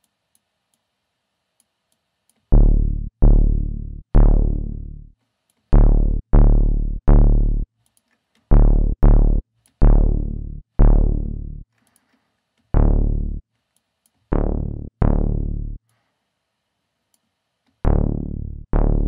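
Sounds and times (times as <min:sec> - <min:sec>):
low synth bass notes: 0:02.5 - 0:05.1, 0:05.7 - 0:07.7, 0:08.5 - 0:11.6, 0:12.8 - 0:13.4, 0:14.3 - 0:15.8, 0:17.8 - 0:19.0.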